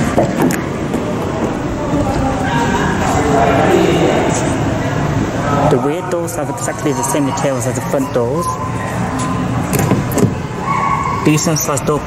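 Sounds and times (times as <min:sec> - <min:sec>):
showroom background noise: 0:00.0 - 0:12.0.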